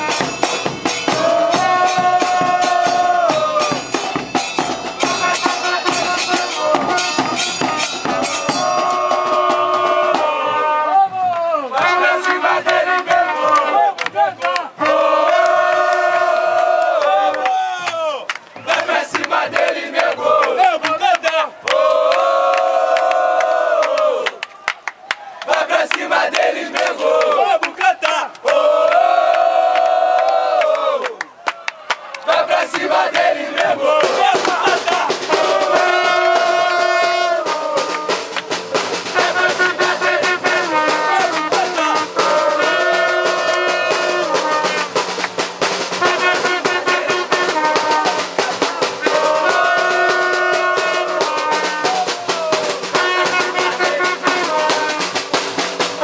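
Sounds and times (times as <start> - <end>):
bass drums beating: 0.0 - 17.0, 32.6 - 56.0
trumpet playing: 0.0 - 17.3, 32.4 - 56.0
crowd chanting: 0.0 - 24.4, 25.2 - 56.0.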